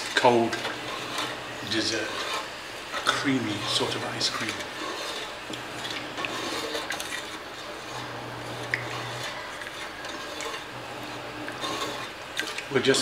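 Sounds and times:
wooden spoon scraping a metal pot: 0.0 - 13.0.

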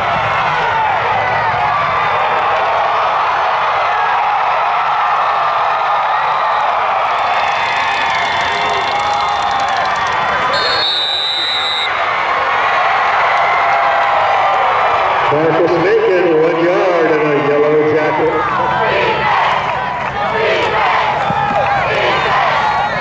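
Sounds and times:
stadium crowd cheering and shouting: 0.0 - 23.0.

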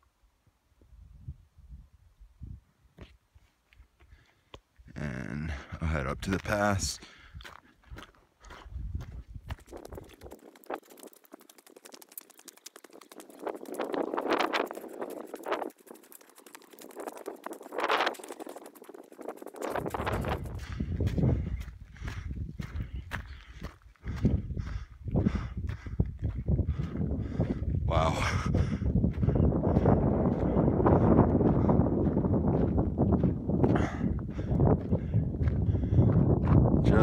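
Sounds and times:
footsteps crunching on gravel: 5.8 - 27.0.

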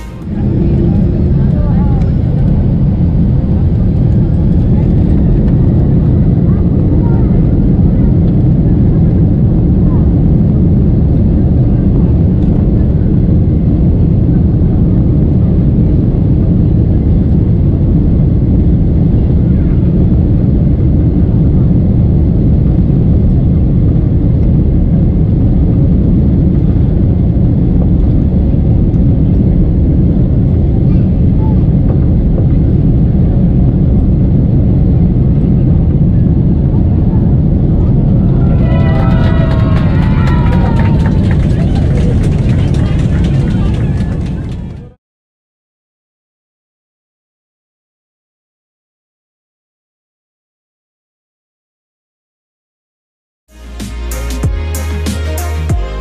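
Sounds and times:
aircraft rolling: 0.0 - 45.0
jet engines rumbling: 0.0 - 45.0.

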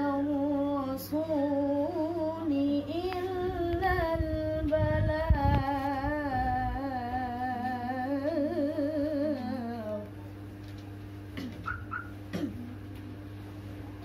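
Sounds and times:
woman reciting melodically: 0.0 - 10.2
low hum: 0.0 - 14.0.

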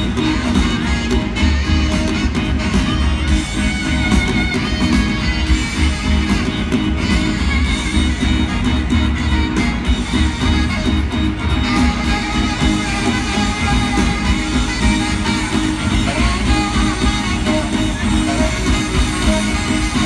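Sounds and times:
live rock band instrumental: 0.0 - 20.0.

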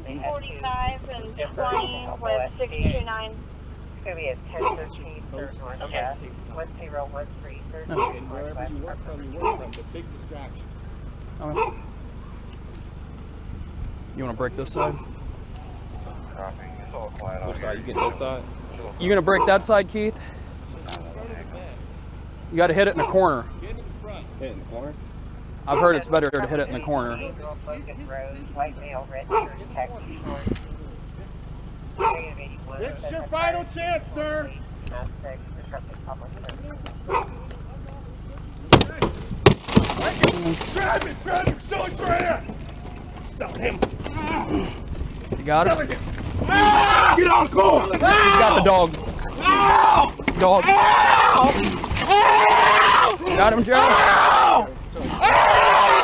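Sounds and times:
steady low hum: 0.0 - 56.0
dog barking and yipping: 1.6 - 2.1, 4.6 - 4.9, 7.9 - 8.3, 9.4 - 9.7, 11.5 - 11.9, 14.7 - 15.2, 17.9 - 18.3, 22.9 - 23.3, 29.2 - 29.6, 32.0 - 32.3, 37.0 - 37.5.

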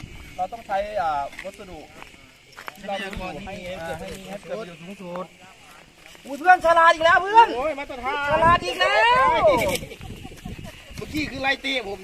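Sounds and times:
people talking: 0.4 - 12.0.

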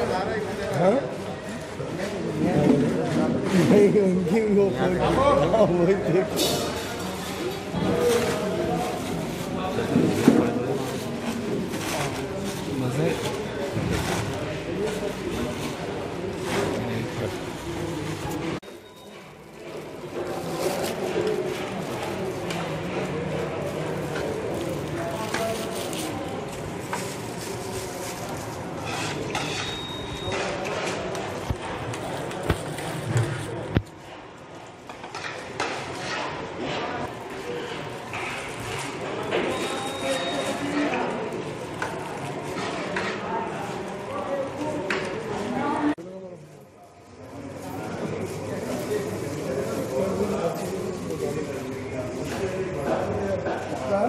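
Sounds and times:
indistinct chatter of voices: 0.0 - 54.0.

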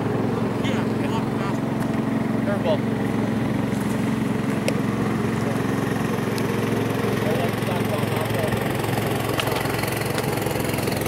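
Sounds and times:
small engine droning: 0.0 - 11.0.

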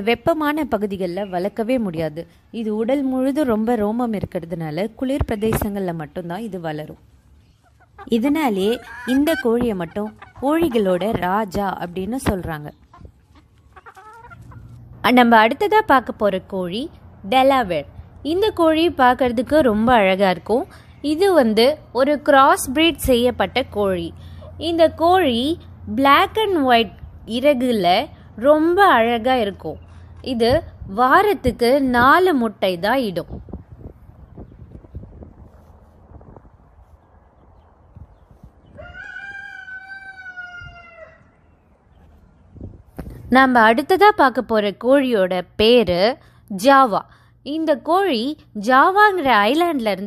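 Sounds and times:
chicken clucking: 6.9 - 14.9
rooster crowing: 38.7 - 41.5.

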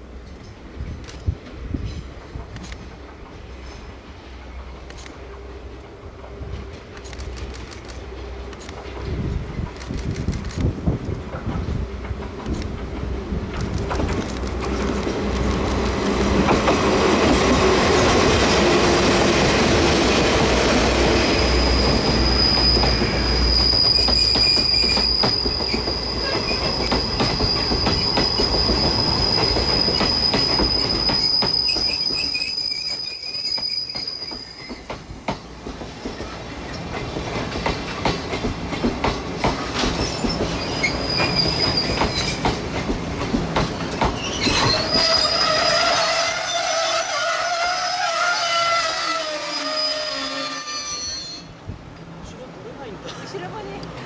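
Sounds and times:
diesel locomotive engine rumble: 0.0 - 54.0
high steady wheel squeal: 21.0 - 35.2, 40.0 - 42.4, 44.2 - 51.9
low wavering brake squeals: 21.2 - 35.1, 40.0 - 42.4, 44.2 - 51.8.

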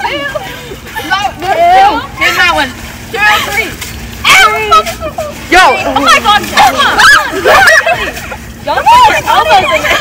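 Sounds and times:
girls squealing and shouting: 0.0 - 10.0.

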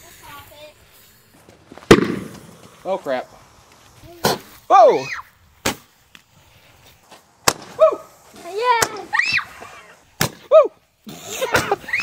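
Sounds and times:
roman candle popping: 1.8 - 2.8
people shouting exclamations: 4.7 - 5.3, 7.8 - 8.1, 8.9 - 9.8.

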